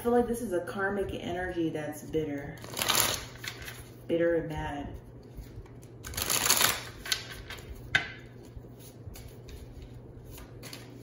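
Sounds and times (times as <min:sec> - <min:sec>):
cards being shuffled: 0:05.2 - 0:11.0.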